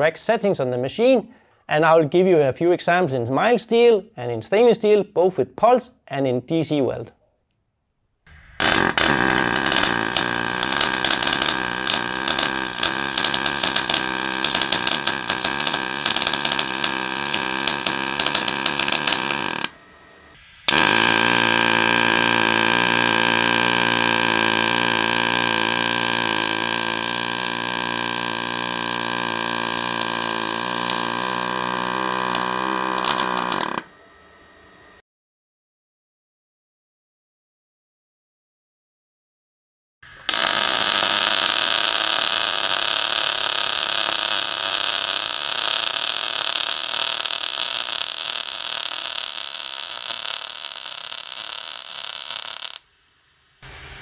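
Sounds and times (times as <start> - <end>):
welding arc crackling and buzzing: 8.3 - 33.9, 40.1 - 52.9.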